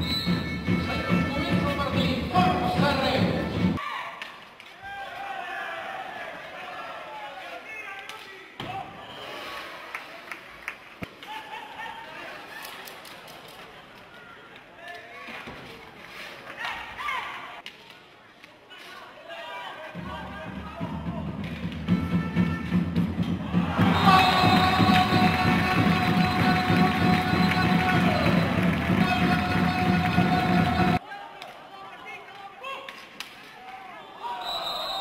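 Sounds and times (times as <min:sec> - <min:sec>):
players calling out: 0:23.2 - 0:31.0.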